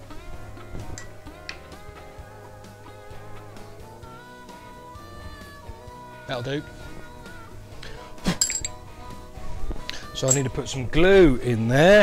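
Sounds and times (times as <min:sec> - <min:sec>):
soft background music: 0:00.0 - 0:12.0
sharp metallic clink: 0:08.3 - 0:08.8, 0:10.2 - 0:10.6.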